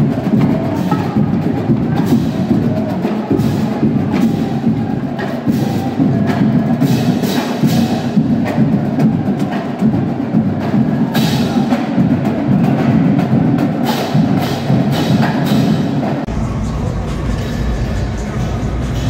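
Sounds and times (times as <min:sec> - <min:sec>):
marching drumline cadence: 0:00.0 - 0:19.0.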